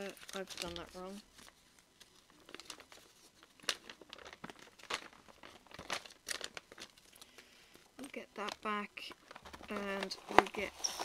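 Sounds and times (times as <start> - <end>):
paper packaging crinkling: 0.0 - 11.0.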